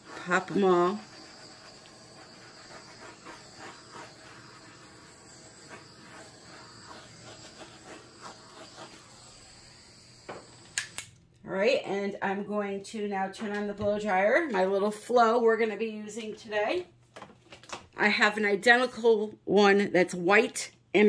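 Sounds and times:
torch flame hissing: 0:00.0 - 0:11.2.

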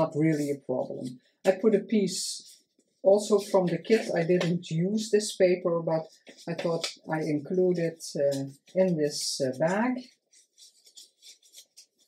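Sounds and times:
paper rustling: 0:02.4 - 0:04.6, 0:05.9 - 0:12.0.

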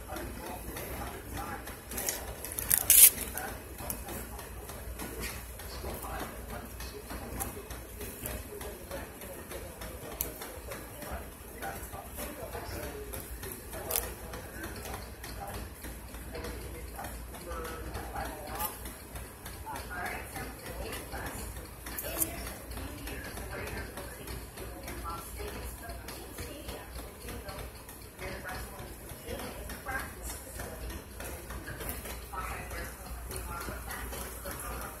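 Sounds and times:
indistinct conversation: 0:00.0 - 0:35.0.

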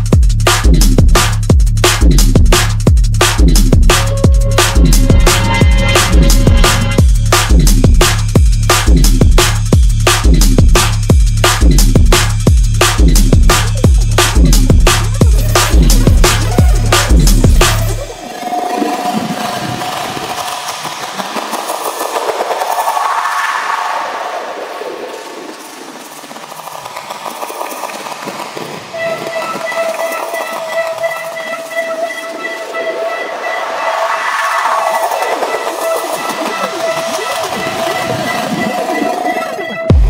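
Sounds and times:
synth sweeps: 0:12.6 - 0:26.6, 0:28.9 - 0:40.0
dense clicking texture: 0:18.8 - 0:23.5, 0:24.7 - 0:32.7
whistle-like tone: 0:28.9 - 0:40.0.

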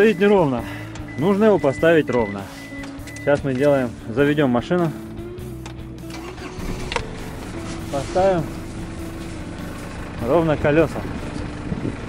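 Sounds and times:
diesel engine starting and idling: 0:00.0 - 0:12.0.

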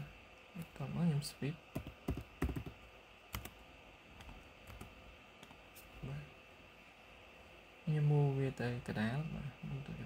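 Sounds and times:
keyboard keystrokes: 0:01.7 - 0:03.5.

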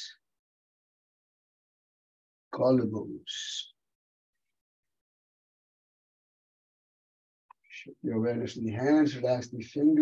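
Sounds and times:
man speaking: 0:02.5 - 0:03.8, 0:07.7 - 0:10.0.

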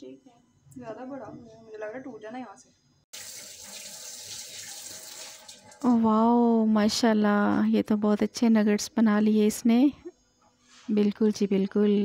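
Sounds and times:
water running from a tap: 0:03.1 - 0:05.9.

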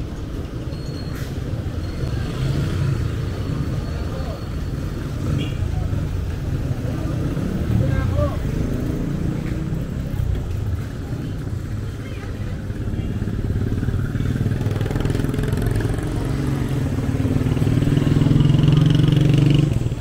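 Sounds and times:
vehicle engines passing: 0:00.0 - 0:20.0.

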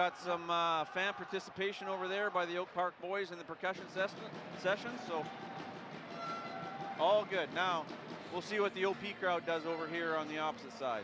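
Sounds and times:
crowd hubbub: 0:00.0 - 0:11.0.

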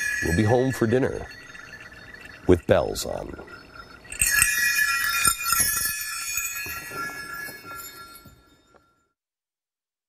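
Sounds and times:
bells jingling and ringing: 0:00.0 - 0:09.2.

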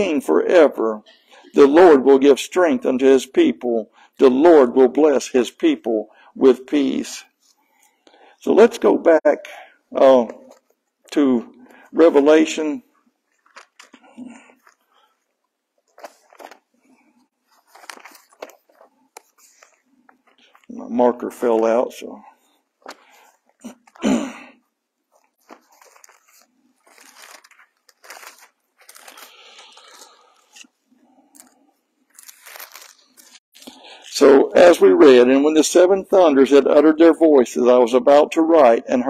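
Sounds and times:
book pages rustling: 0:13.0 - 0:24.0, 0:25.0 - 0:33.4.

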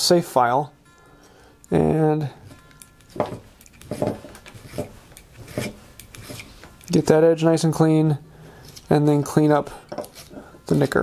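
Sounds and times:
file strokes on steel blade: 0:03.9 - 0:06.6, 0:10.0 - 0:11.0.

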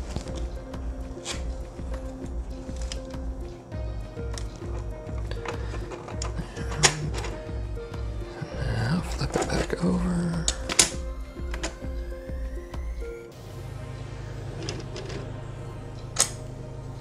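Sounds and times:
background music with beat: 0:00.0 - 0:17.0.

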